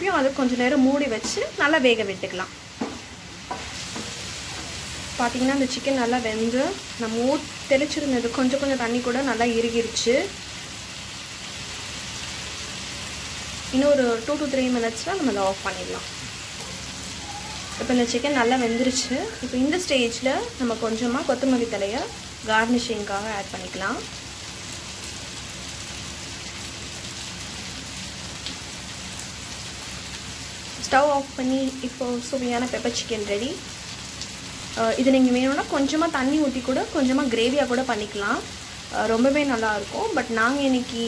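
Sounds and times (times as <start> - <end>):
chicken sizzling in oil: 0.0 - 41.0.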